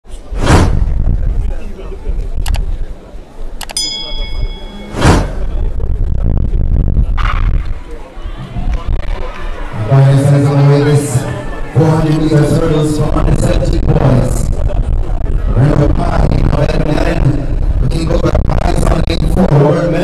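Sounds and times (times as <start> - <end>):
steady low rumble: 0.1 - 20.0
ringing chime ding: 3.8 - 5.0
whoosh sound effect: 4.6 - 5.8.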